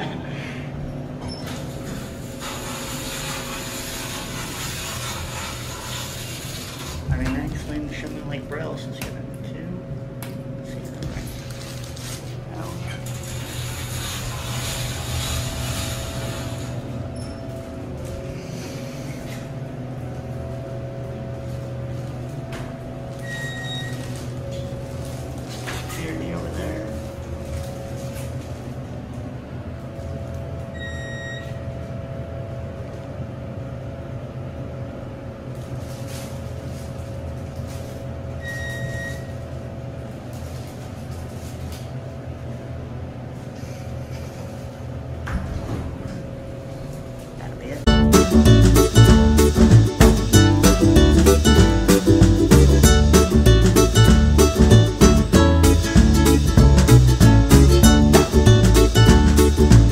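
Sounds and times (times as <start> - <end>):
elevator car humming: 0.0 - 59.9.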